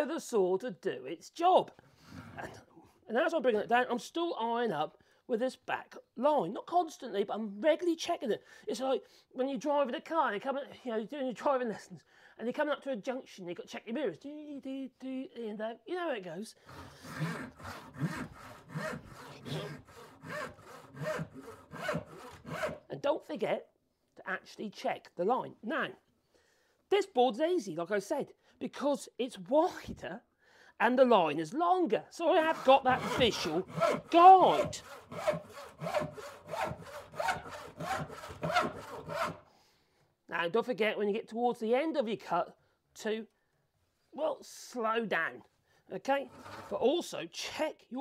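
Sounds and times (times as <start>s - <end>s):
hand saw cutting wood: 2.0s - 2.6s, 16.6s - 22.9s, 32.3s - 39.4s, 46.0s - 46.9s.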